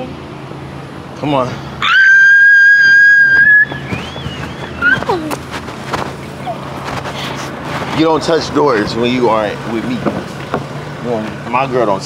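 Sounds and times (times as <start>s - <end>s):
woman screaming and squealing: 1.8s - 5.4s.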